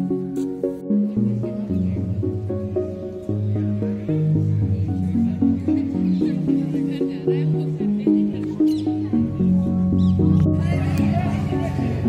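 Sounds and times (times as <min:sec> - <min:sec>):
melody of short stepped notes: 0:00.0 - 0:12.0
steady low accompaniment: 0:00.0 - 0:12.0.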